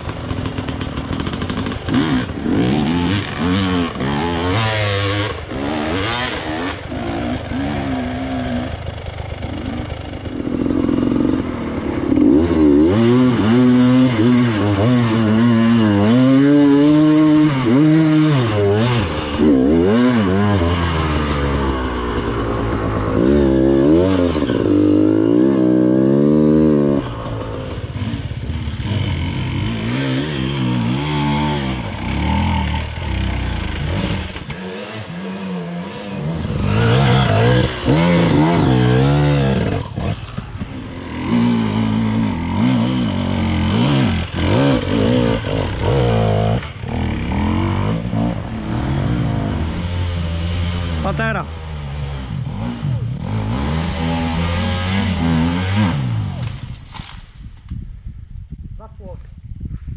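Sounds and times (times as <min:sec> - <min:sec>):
dirt bike engine revving: 0:00.0 - 0:57.1.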